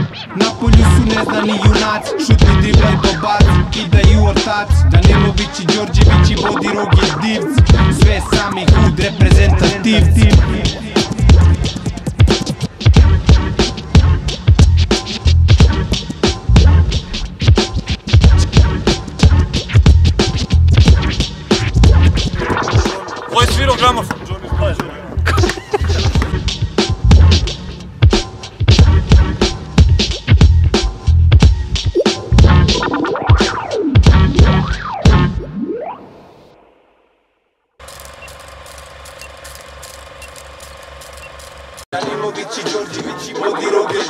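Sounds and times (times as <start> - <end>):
turntable scratching: 0.0 - 27.5, 31.6 - 35.5, 42.0 - 44.0
heavy kick drum beat: 0.6 - 35.3
film projector clatter: 37.8 - 41.9
faint short beeps: 41.1 - 41.5.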